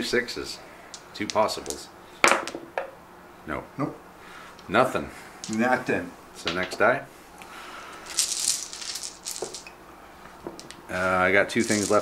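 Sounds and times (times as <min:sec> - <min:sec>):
dice rattling in a bag: 0:05.4 - 0:05.7, 0:08.0 - 0:09.7, 0:10.6 - 0:12.0.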